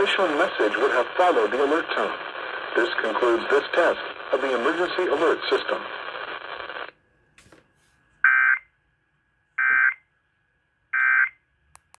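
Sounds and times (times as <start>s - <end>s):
radio broadcast audio: 0.0s - 6.9s.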